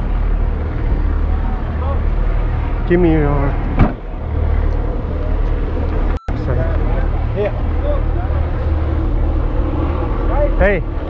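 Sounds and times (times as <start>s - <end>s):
car engines idling: 0.0s - 11.0s.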